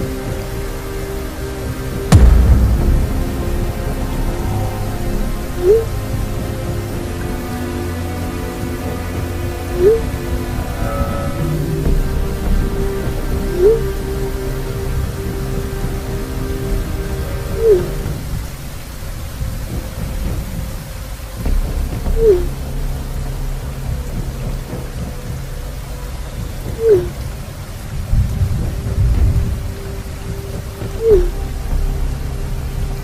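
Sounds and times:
low musical drone: 0:00.0 - 0:33.0
rain: 0:00.0 - 0:33.0
thunder rumble: 0:00.0 - 0:33.0.

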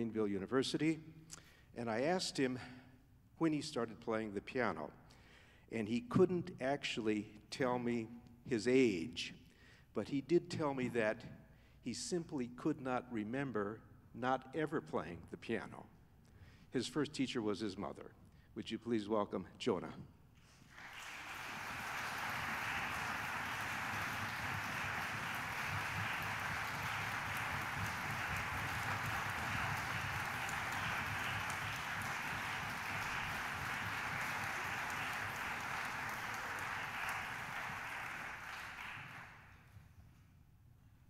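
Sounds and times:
audience applauding: 0:20.6 - 0:39.6.

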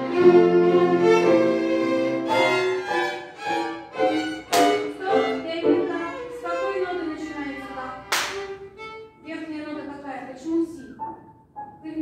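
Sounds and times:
children's violin ensemble: 0:00.0 - 0:09.4.

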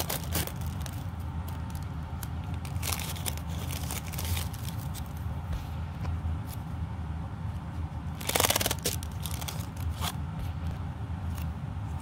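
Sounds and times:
tissue paper rustling and crackling: 0:00.0 - 0:01.1, 0:02.6 - 0:05.1, 0:08.2 - 0:10.1.

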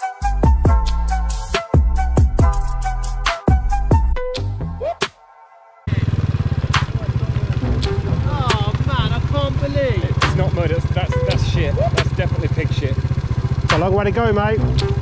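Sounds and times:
motorcycle engine idling: 0:05.9 - 0:15.0.

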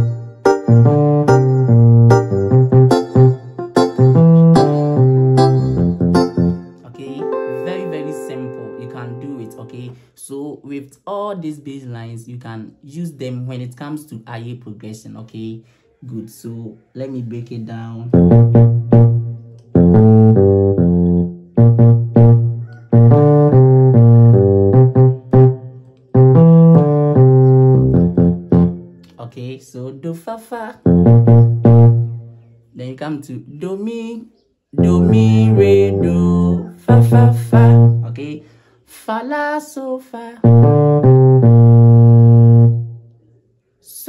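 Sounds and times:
electric piano bass line: 0:00.0 - 0:09.9, 0:18.1 - 0:29.2, 0:30.8 - 0:32.4, 0:34.8 - 0:38.2, 0:40.4 - 0:43.0
person speaking a word: 0:06.8 - 0:18.1, 0:29.1 - 0:30.8.

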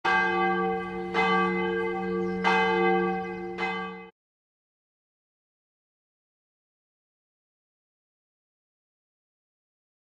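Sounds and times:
church bell tolling: 0:00.0 - 0:04.2.

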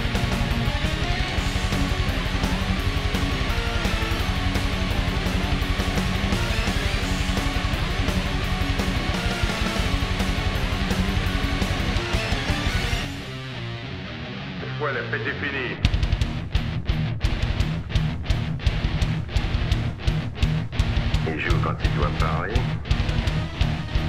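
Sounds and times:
heavy metal electric guitar riffing: 0:00.0 - 0:24.0.

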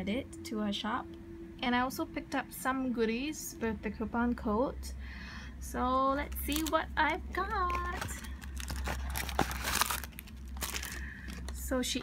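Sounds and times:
packaging rustling and crinkling: 0:06.2 - 0:06.8, 0:07.4 - 0:11.6.

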